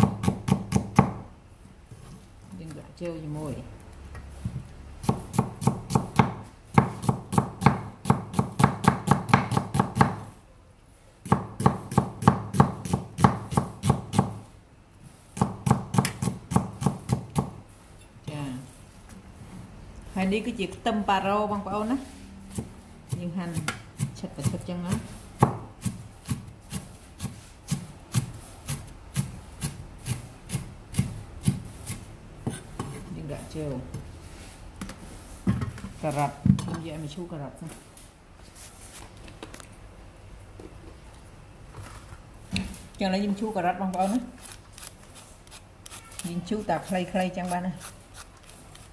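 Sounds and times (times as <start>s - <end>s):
knife chopping on wooden board: 0.0s - 1.2s, 5.0s - 10.2s, 23.5s - 33.0s.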